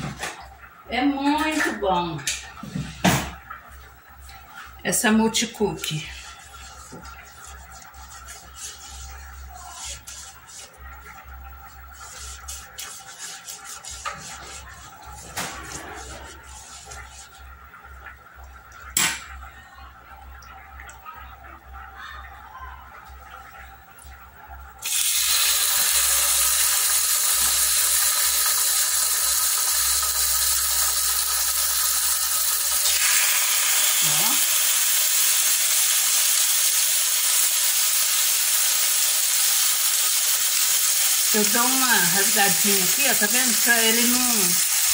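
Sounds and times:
pork chops sizzling in oil: 24.8 - 44.9.

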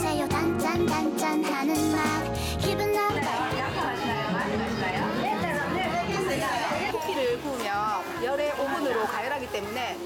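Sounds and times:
background music: 0.0 - 10.0
voices chattering: 2.7 - 10.0.

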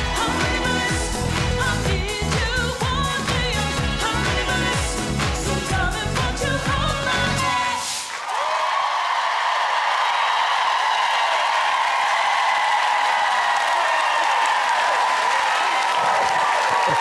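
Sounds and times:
audience applauding and cheering: 0.0 - 17.0.

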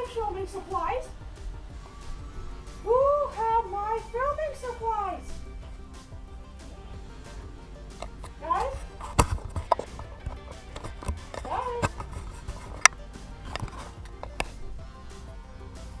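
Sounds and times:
low steady hum: 0.0 - 16.0
sharp clicks and knocks: 8.0 - 14.6.

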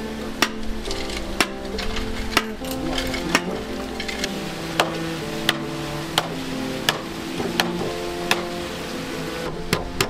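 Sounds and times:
background music: 0.0 - 10.0
hammer striking wooden stake: 4.8 - 5.6.

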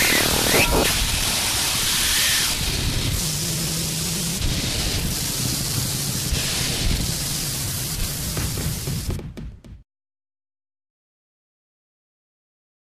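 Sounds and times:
static hiss: 0.0 - 9.2.

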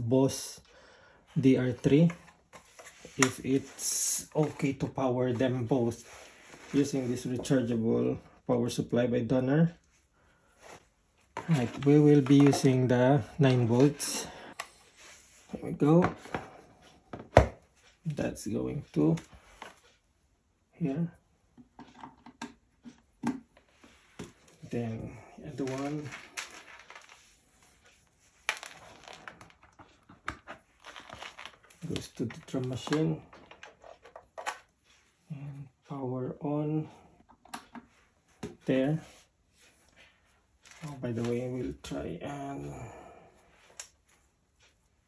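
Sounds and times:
power cables clicking and rubbing: 11.3 - 14.7, 25.5 - 34.8.

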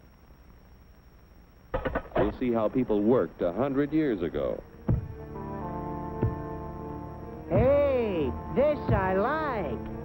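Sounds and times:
faint high whine: 0.0 - 10.0
film soundtrack hiss and hum: 0.0 - 10.0.

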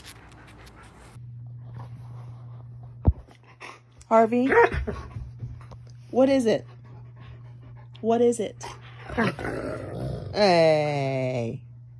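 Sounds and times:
faint low hum: 0.0 - 11.9.

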